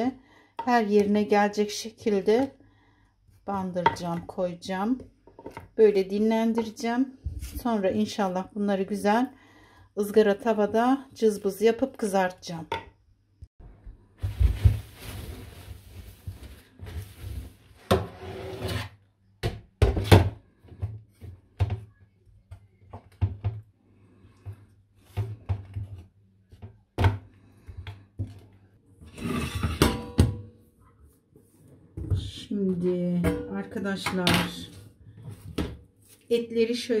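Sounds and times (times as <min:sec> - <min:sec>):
rustling: 0:14.2 - 0:17.8.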